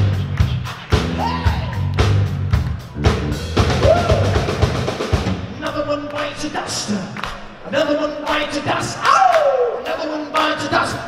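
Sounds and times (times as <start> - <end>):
bass line: 0.0 - 6.1
drum kit beat: 0.0 - 9.2.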